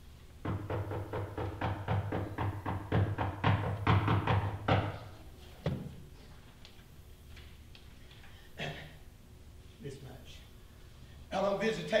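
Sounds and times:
knocking on wood: 0:00.4 - 0:05.9.

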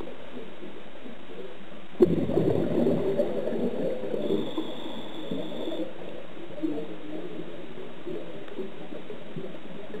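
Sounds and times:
underwater exhaled bubbles burbling: 0:02.0 - 0:10.0
faint thin whistle: 0:04.2 - 0:05.9.

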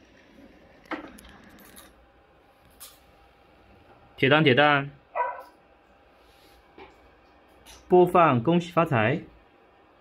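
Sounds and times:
robot dog bark-like woof: 0:05.1 - 0:05.6.

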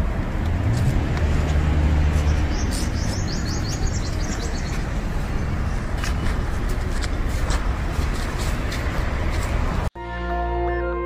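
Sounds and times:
road traffic rumble: 0:00.0 - 0:11.0
bird chirping: 0:02.2 - 0:05.0.

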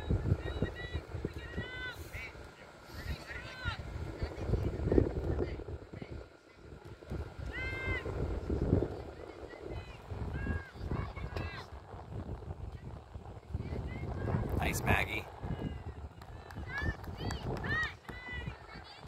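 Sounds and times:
wind on microphone: 0:00.0 - 0:19.0.

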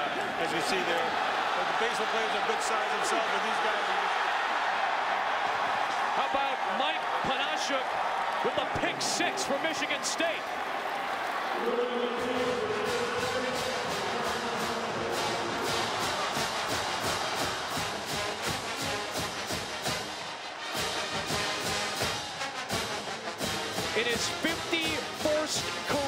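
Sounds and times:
crowd cheering: 0:00.0 - 0:26.0
marching band brass: 0:08.0 - 0:26.0
steady drum beat: 0:12.1 - 0:20.1.

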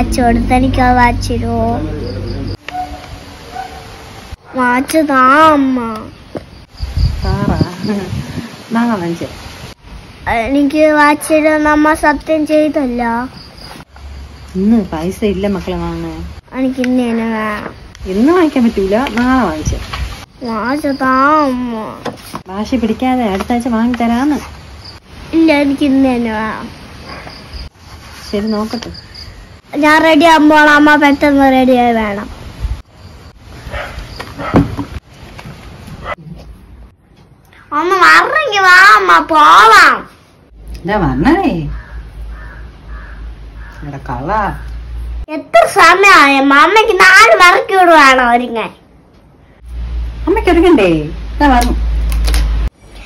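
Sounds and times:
child's voice: 0:00.0 - 0:02.1, 0:04.5 - 0:06.2, 0:10.2 - 0:13.4, 0:16.5 - 0:17.8, 0:20.4 - 0:22.2, 0:25.3 - 0:26.8, 0:29.7 - 0:32.3, 0:37.6 - 0:40.2, 0:45.3 - 0:48.8
crickets chirping: 0:00.0 - 0:35.3.

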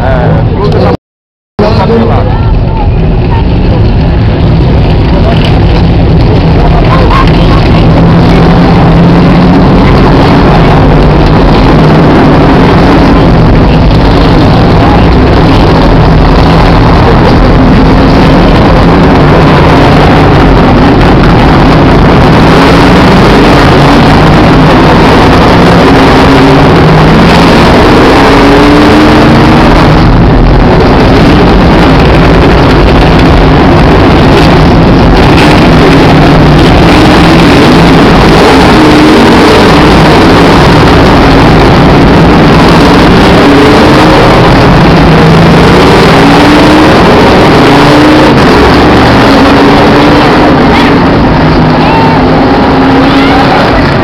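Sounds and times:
loud constant rushing noise: 0:00.0 - 0:01.0, 0:01.6 - 0:54.0
race car engines accelerating: 0:00.0 - 0:01.0, 0:01.6 - 0:54.0.

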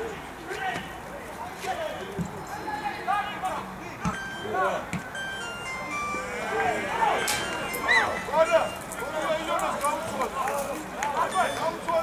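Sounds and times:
electronic jingle: 0:04.2 - 0:08.9
footballers shouting: 0:05.9 - 0:12.0.

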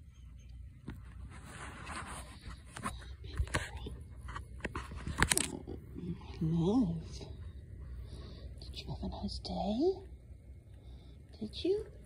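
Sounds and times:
fur rubbing on microphone: 0:01.1 - 0:02.8.

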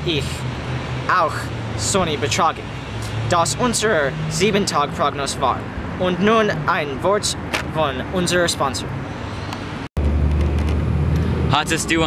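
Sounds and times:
outdoor background noise: 0:00.0 - 0:12.0.

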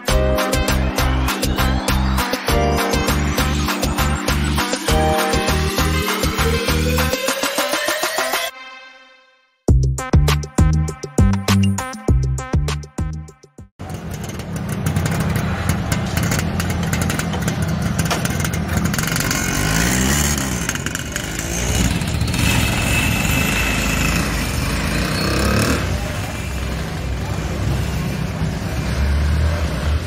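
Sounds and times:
motor tricycle engine running: 0:13.8 - 0:30.0
motorcycle passing: 0:13.8 - 0:30.0.

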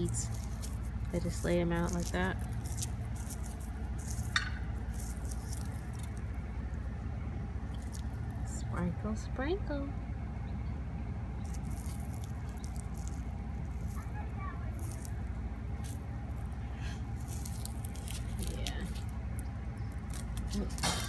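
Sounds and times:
seed head crackling and rustling: 0:00.0 - 0:09.0, 0:11.2 - 0:21.0
steady low rumble: 0:00.0 - 0:21.0.

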